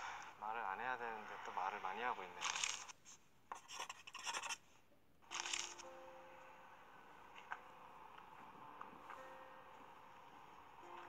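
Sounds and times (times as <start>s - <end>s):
pencil scribbling on paper: 2.4s - 4.6s.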